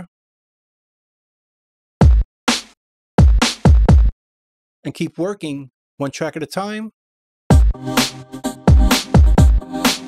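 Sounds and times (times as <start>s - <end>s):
person speaking: 4.9s - 6.9s.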